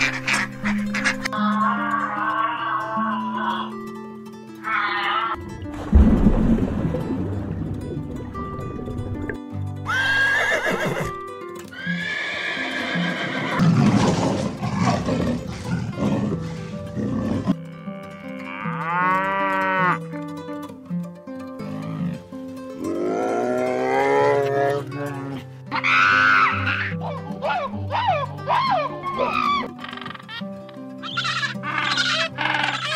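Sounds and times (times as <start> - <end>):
animal calls: 0.0 - 3.8, 4.6 - 5.4, 25.7 - 32.9
background music: 0.0 - 32.9.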